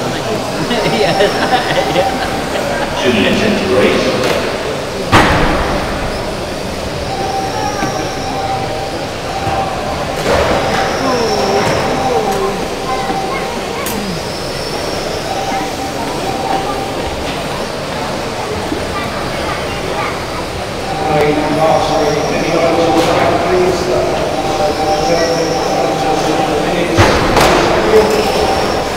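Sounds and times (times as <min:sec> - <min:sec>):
reverberant hall noise: 0:00.0 - 0:28.9.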